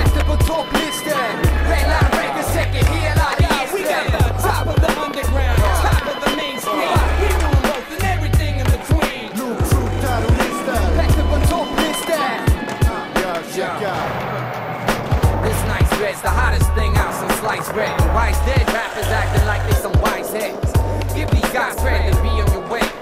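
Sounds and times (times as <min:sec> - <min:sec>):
hip-hop music with deep bass: 0:00.0 - 0:23.0
skateboard clacks: 0:00.0 - 0:23.0
skateboard wheels rolling: 0:00.0 - 0:23.0.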